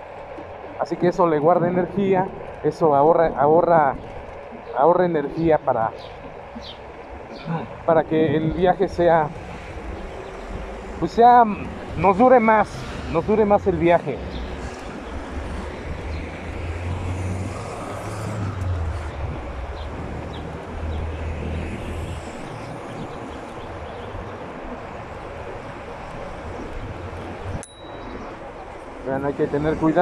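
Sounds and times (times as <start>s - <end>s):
city traffic: 0.0s - 30.0s.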